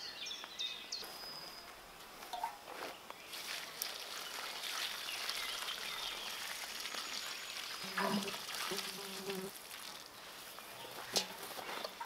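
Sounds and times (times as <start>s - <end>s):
water pouring onto soil: 3.2s - 12.0s
fly buzzing: 7.8s - 9.6s.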